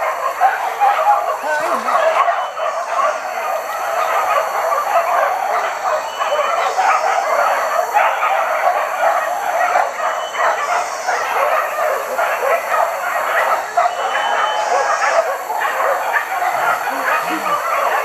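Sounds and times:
dogs barking: 0.0s - 18.0s.

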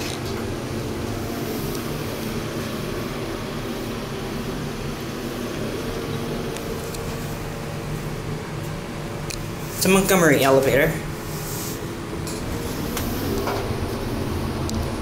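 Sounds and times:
elevator mechanical hum: 0.0s - 15.0s.

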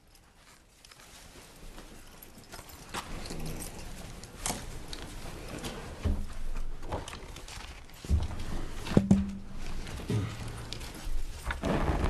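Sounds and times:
knocks and shuffles on hard floor: 4.6s - 12.0s.

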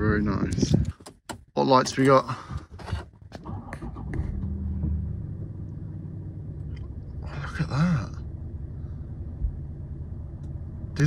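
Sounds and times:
diesel engine starting and idling: 3.4s - 11.0s.

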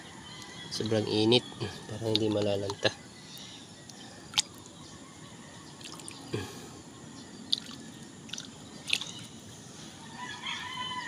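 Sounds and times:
faint steady background noise: 0.0s - 11.0s
small splashes and drips: 3.9s - 4.7s, 5.8s - 6.2s, 7.5s - 9.3s.

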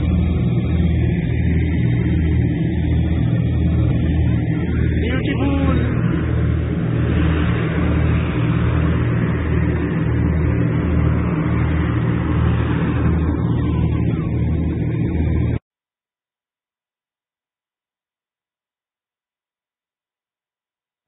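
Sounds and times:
wind buffeting microphone: 0.0s - 15.6s.

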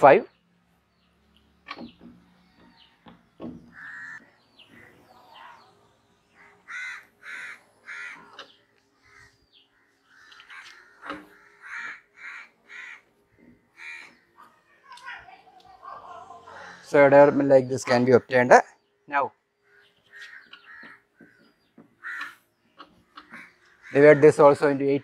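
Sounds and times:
crows cawing: 3.6s - 5.6s, 6.3s - 14.5s, 16.4s - 17.3s, 19.6s - 25.0s.

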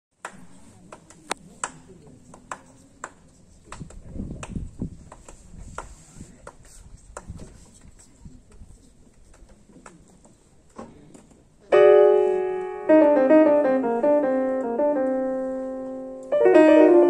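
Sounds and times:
faint high hiss: 11.7s - 17.0s.

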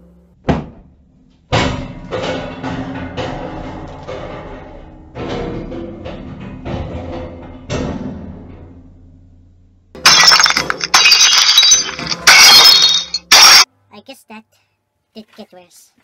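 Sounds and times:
crashing shattering noise: 10.0s - 13.7s.

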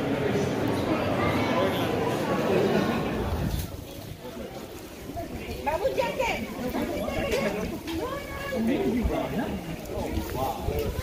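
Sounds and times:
crowd chatter: 0.0s - 11.0s
wind rumble on microphone: 3.2s - 4.4s, 9.0s - 11.0s.

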